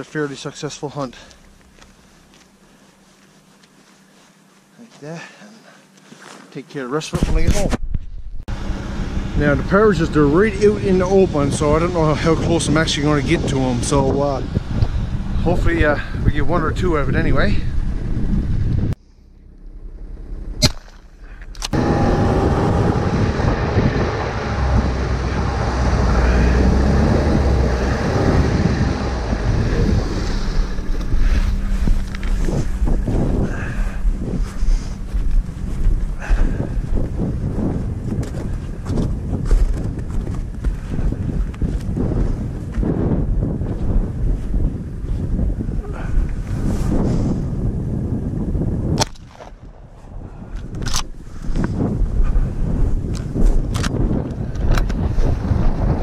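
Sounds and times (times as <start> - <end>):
wind on microphone: 7.2 - 19.0, 21.4 - 56.0
snowmobile engine running: 8.5 - 19.0, 19.6 - 48.0.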